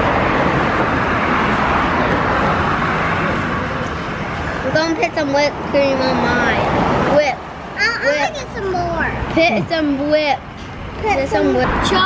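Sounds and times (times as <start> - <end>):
passing vehicle rush: 0.0 - 12.0.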